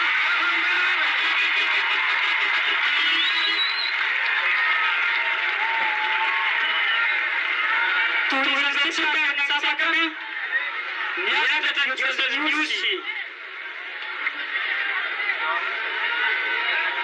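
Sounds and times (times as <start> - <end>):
man speaking over microphone: 8.3 - 10.3, 11.2 - 13.3.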